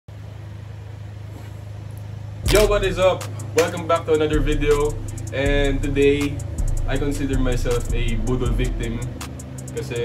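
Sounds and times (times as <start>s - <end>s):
steady low hum: 0.1s - 10.0s.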